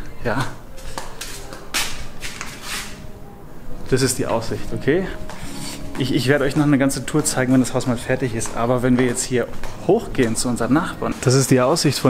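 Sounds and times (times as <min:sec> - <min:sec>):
scuffing and rustling footsteps: 0:00.3 - 0:03.1, 0:03.9 - 0:12.0.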